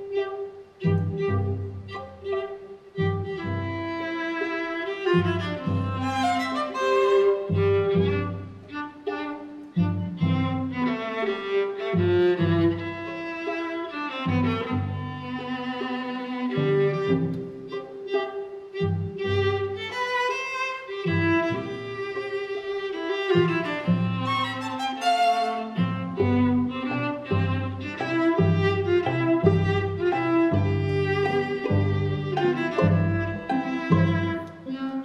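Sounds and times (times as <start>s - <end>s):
cello low notes: 0.0s - 35.0s
upper strings holding notes: 27.9s - 34.7s.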